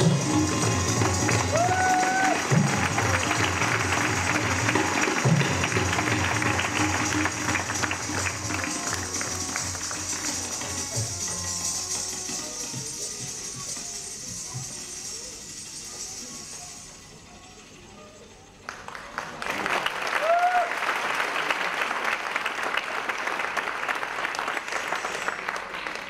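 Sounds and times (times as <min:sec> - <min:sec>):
tabla strokes: 0:00.0 - 0:17.0
dense bright patter: 0:00.0 - 0:17.1.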